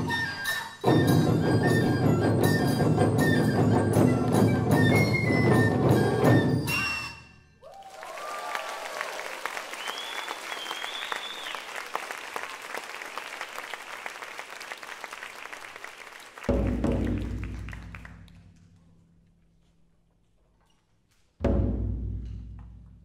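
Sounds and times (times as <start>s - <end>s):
whoops and cheers: 7.6s - 11.7s
audience applauding: 7.6s - 18.3s
deep drum boom: 16.5s - 18.3s, 21.4s - 23.0s.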